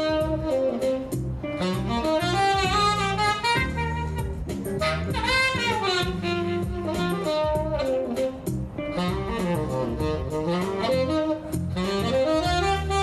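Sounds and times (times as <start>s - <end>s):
bass notes: 0.0s - 13.0s
tenor saxophone jazz melody: 0.0s - 13.0s.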